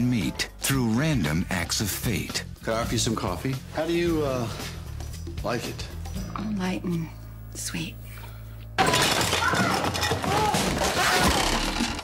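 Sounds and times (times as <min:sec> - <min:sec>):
glass shattering crash: 0:08.8 - 0:12.0
loud clatter of commotion: 0:08.8 - 0:12.0.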